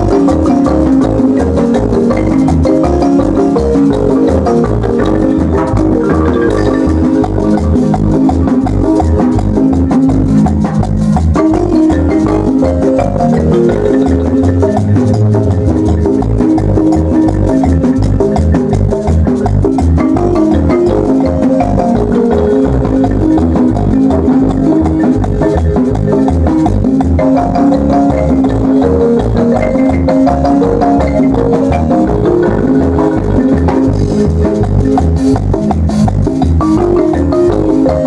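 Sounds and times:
bass and drum beat: 0:00.0 - 0:38.0
marimba melody: 0:00.0 - 0:38.0.

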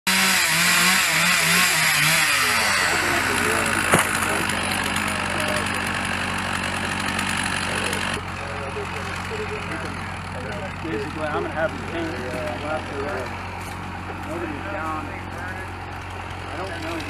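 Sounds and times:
chainsaw cutting: 0:00.1 - 0:17.0
sharp knock: 0:03.9 - 0:04.3.

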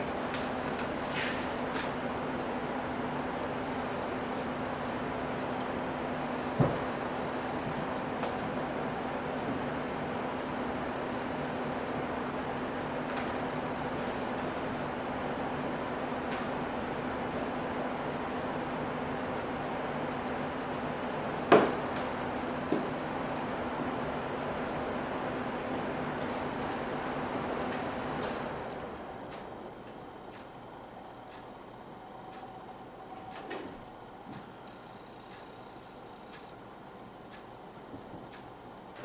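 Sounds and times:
machine hum and hiss: 0:00.0 - 0:39.0.

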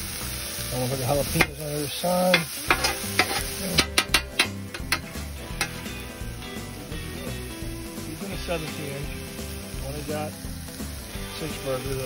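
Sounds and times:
onions and mushrooms sizzling: 0:00.0 - 0:12.0
background music with steady beat: 0:00.1 - 0:12.0
metal spatula clicking on griddle: 0:02.3 - 0:05.9.

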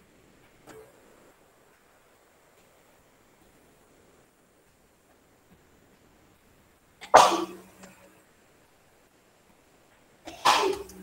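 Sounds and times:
person sneezing: 0:07.0 - 0:07.6, 0:10.3 - 0:10.9.

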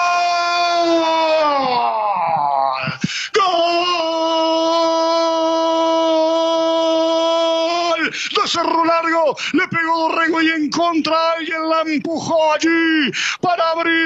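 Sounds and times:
man's drawn-out goal cry: 0:00.0 - 0:10.4.

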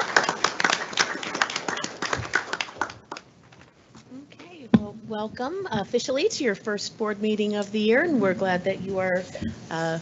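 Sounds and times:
small audience clapping: 0:00.0 - 0:03.7.

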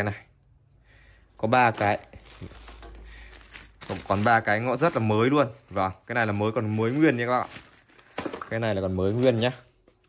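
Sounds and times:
plastic bag crinkling: 0:01.4 - 0:09.7.

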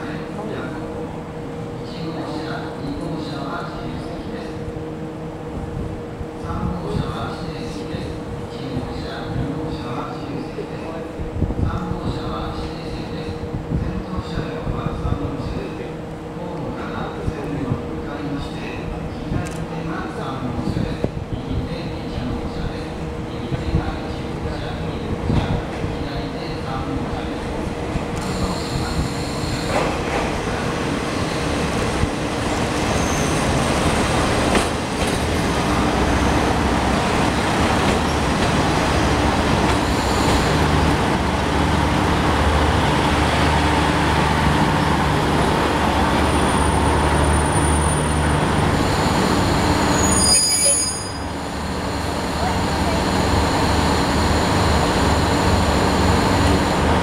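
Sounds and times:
diesel train engines running: 0:15.1 - 0:57.0
train wheels rolling: 0:27.4 - 0:57.0
brakes squealing: 0:46.3 - 0:56.6.

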